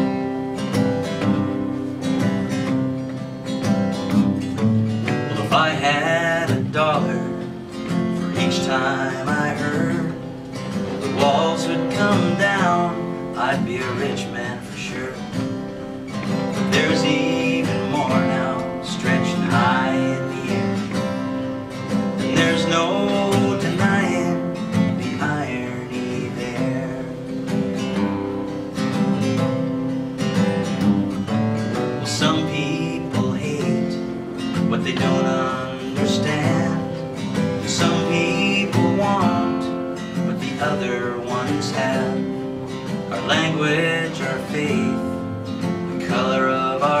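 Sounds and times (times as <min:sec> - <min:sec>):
acoustic guitar strumming: 0:00.0 - 0:47.0
man singing: 0:04.1 - 0:28.0, 0:31.7 - 0:47.0.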